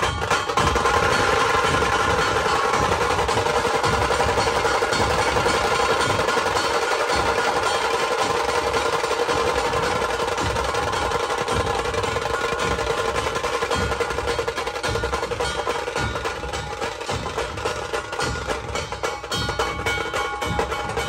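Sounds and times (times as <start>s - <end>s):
deep dhol drum beats: 0.0s - 21.0s
tasha drums rapid roll: 0.0s - 21.0s.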